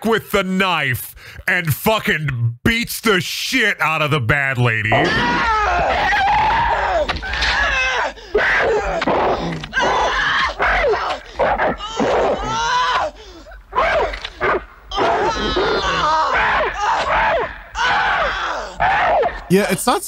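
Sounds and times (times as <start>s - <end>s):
woman screaming in pain: 5.0s - 14.2s, 14.9s - 19.3s.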